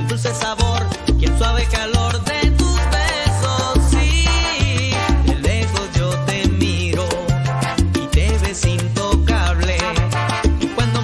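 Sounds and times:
salsa dance music: 0.0 - 11.0.

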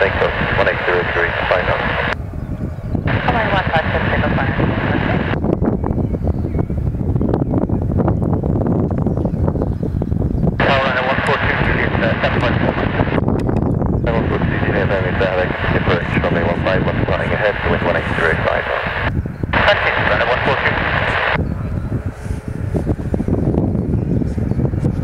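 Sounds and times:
radio voice chatter: 0.0 - 2.2, 3.1 - 5.4, 10.6 - 13.2, 14.1 - 21.7
distant jet airliner taxiing: 0.0 - 5.4, 10.6 - 13.2, 14.1 - 23.4
wind on microphone: 0.0 - 25.0.

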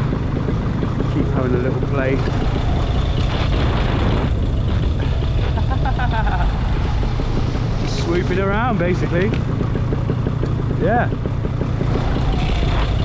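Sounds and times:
paramotor engine droning: 0.0 - 13.0.

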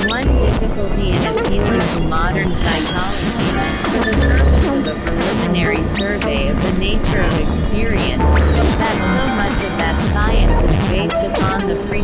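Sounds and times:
synthesizer squealing tones: 1.2 - 11.8
dense low drone: 2.1 - 11.0.

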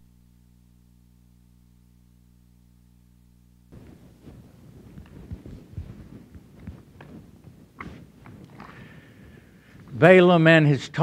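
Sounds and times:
low electrical hum: 0.0 - 11.0
low dull thumps: 3.7 - 9.7
faint rustling: 3.7 - 10.2.

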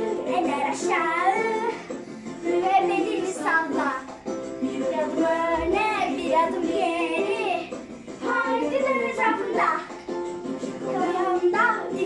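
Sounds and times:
child singing: 0.0 - 1.8, 2.4 - 4.1, 4.7 - 10.0, 10.8 - 12.0
light music: 0.0 - 12.0.

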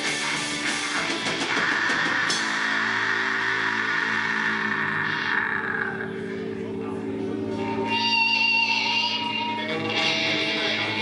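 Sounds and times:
drumming: 0.0 - 3.1
distorted electric guitar chord: 0.0 - 11.0.

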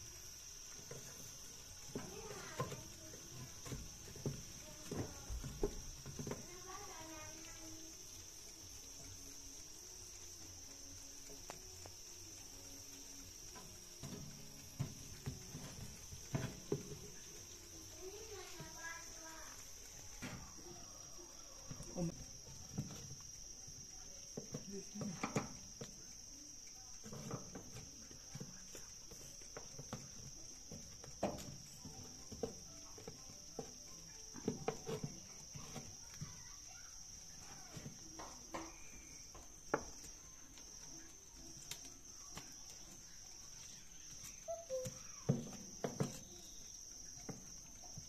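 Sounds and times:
faint distant voices: 0.0 - 48.0
insects chirring: 0.0 - 48.0.

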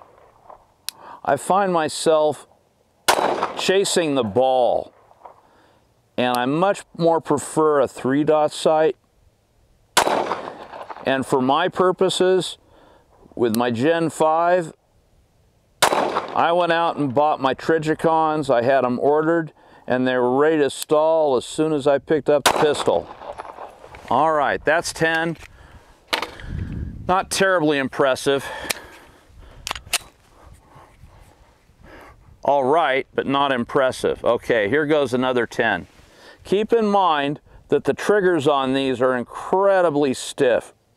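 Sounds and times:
pistol shot: 3.1 - 3.7, 10.0 - 11.1, 15.8 - 16.4, 22.4 - 23.8
pistol mechanical clicks: 29.6 - 30.2.

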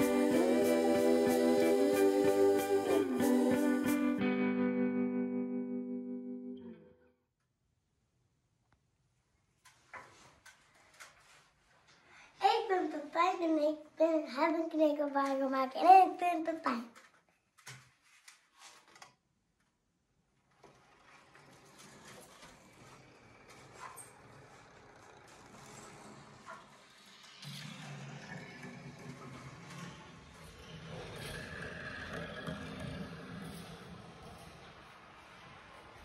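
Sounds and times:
marbles rolling on plastic track: 20.6 - 30.2.

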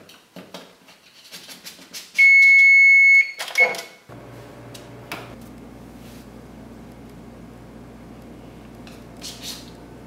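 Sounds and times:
high appliance beep: 2.2 - 4.0.

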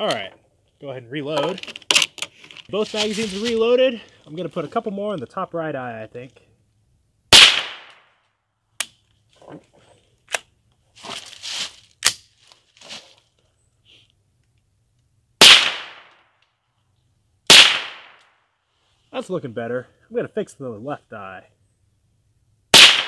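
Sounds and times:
rifle handling noise: 1.3 - 3.6
rifle shots with echo: 7.3 - 8.1, 15.4 - 16.2, 17.5 - 18.2, 22.7 - 23.0.

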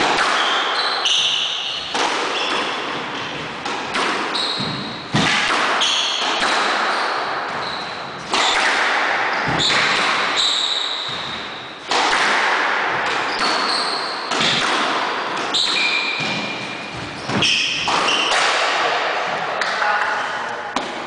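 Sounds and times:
squash ball hits: 0.0 - 19.7
shoe squeaks on court: 0.4 - 3.4, 4.3 - 5.1, 5.8 - 6.2, 6.9 - 8.1, 9.3 - 11.8, 13.2 - 14.3, 15.5 - 18.4.

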